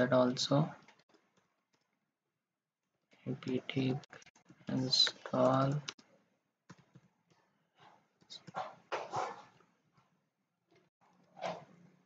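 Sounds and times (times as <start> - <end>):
computer keyboard typing: 0.8 - 2.0, 3.4 - 6.1, 6.7 - 7.4
dog barking: 8.6 - 9.5.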